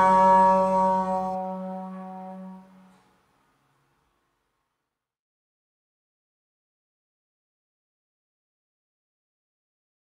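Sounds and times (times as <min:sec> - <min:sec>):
trombone holding long note: 0:00.0 - 0:03.2
recorded backing accompaniment: 0:00.0 - 0:03.6.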